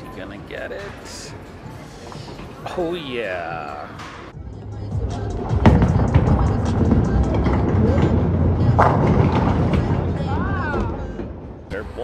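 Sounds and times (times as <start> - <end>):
bowling ball rolling on wooden lane: 5.6 - 11.0
bowling pins crashing: 5.6 - 11.1.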